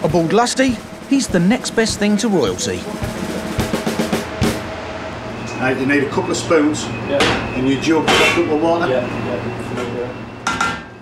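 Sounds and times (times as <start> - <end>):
kitchenware clattering: 8.1 - 8.5.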